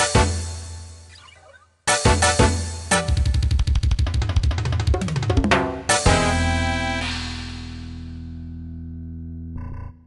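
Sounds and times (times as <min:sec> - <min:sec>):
fast drum roll: 0:03.3 - 0:05.8
steady bass note: 0:06.1 - 0:10.0.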